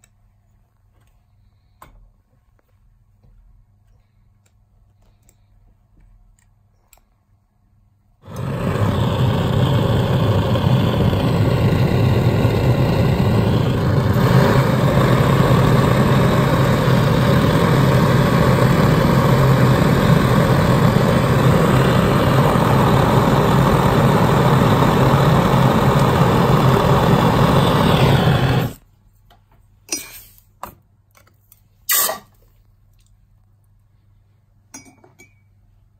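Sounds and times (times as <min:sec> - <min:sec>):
soldering torch rushing: 0:08.2 - 0:28.8.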